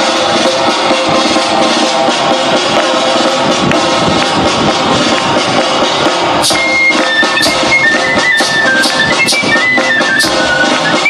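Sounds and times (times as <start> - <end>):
high piping melody: 2.8 - 11.0.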